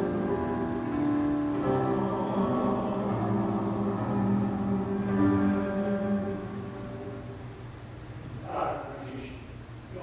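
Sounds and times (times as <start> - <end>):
slow music with long held notes: 0.0 - 7.9.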